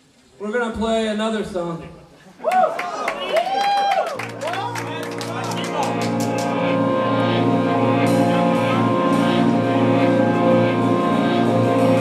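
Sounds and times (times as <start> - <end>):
electric guitar droning chord: 4.2 - 12.0.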